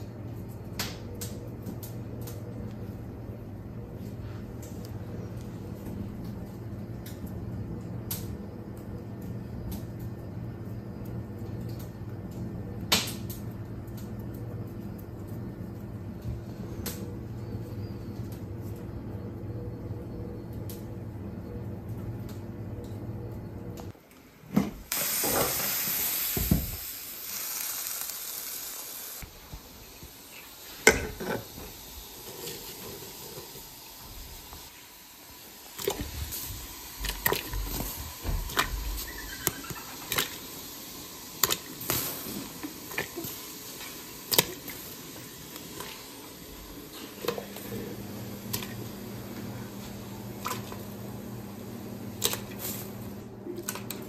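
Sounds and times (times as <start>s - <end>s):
steady low hum: 0.0s - 24.0s
loud hiss: 24.7s - 44.3s
dumplings splashing into water: 41.3s - 42.1s, 53.5s - 54.0s.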